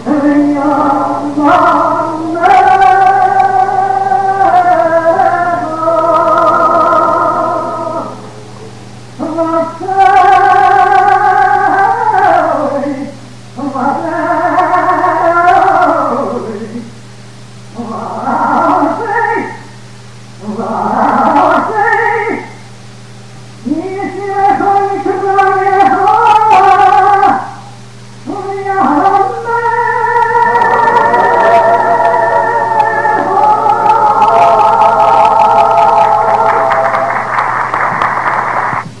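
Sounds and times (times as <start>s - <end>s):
cantorial singing: 0.0s - 16.9s, 23.6s - 37.4s
man chanting with vibrato: 0.0s - 16.9s, 17.7s - 19.8s, 20.4s - 22.7s, 23.6s - 37.1s
steady low hum: 0.0s - 39.0s.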